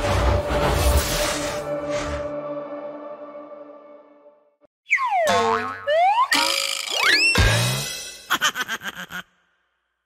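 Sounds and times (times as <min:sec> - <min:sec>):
cartoon boing sounds: 0:04.9 - 0:07.6.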